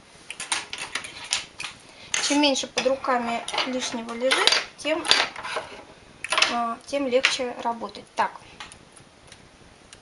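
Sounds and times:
metal tools clinking: 0:02.1 - 0:05.6.

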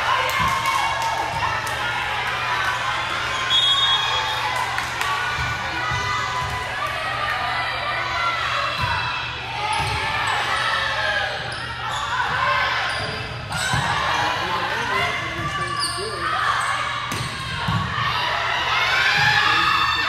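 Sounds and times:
people calling and shouting: 0:00.0 - 0:20.0
sneakers squeaking on floor: 0:09.7 - 0:10.7, 0:11.4 - 0:14.1, 0:14.9 - 0:17.4.

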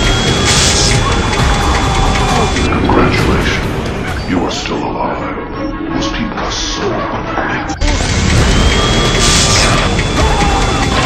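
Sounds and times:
film score music: 0:00.0 - 0:11.0
film sound effects: 0:00.0 - 0:11.0.

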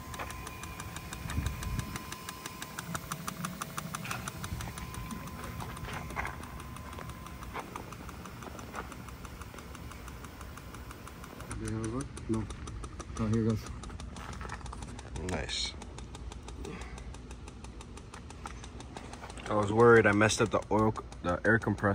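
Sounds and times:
oil pump ticking and humming: 0:00.0 - 0:21.9.

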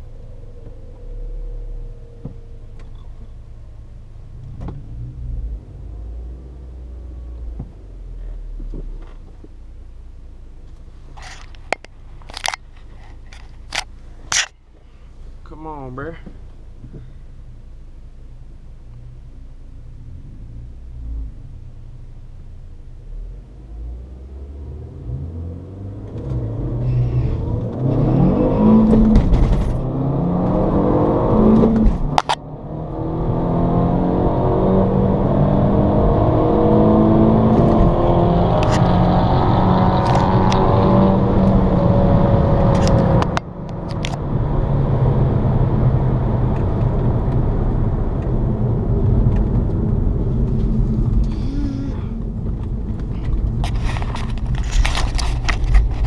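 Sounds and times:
car engine accelerating: 0:00.0 - 0:09.9, 0:18.3 - 0:56.0.

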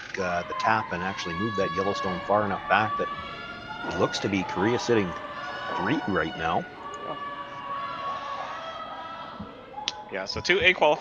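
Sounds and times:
steady background hum: 0:00.0 - 0:10.4
faint steady tones: 0:00.0 - 0:11.0.

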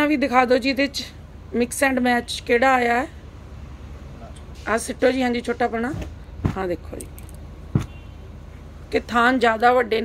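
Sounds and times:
steady background hum: 0:00.0 - 0:10.0
short thud: 0:07.7 - 0:08.0.

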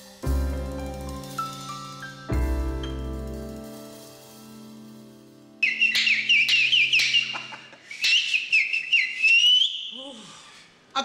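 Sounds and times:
person whistling: 0:05.6 - 0:10.2.

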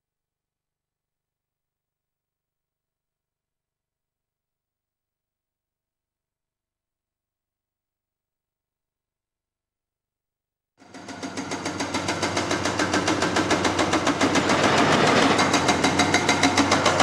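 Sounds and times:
hydraulic breaker hammering rock: 0:10.8 - 0:17.0.

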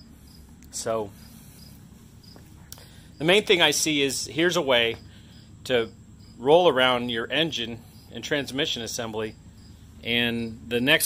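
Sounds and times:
crickets chirping: 0:00.0 - 0:11.0
low background hiss: 0:00.0 - 0:11.0.

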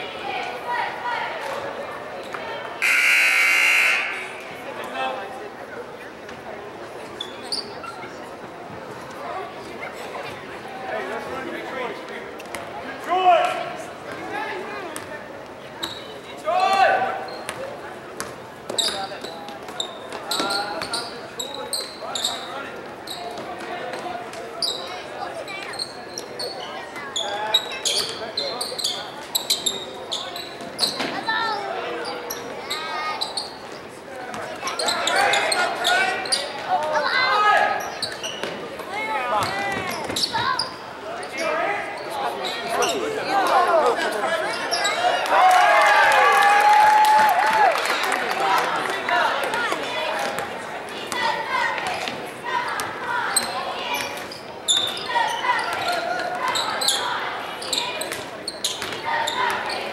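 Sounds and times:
sneakers squeaking: 0:07.1 - 0:08.3, 0:14.9 - 0:37.0, 0:37.7 - 0:43.5, 0:44.3 - 0:45.2, 0:50.2 - 0:59.9.

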